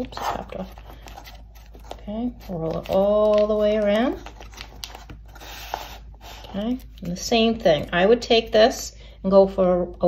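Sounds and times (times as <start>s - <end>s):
paper rustling and rubbing: 0.0s - 7.9s.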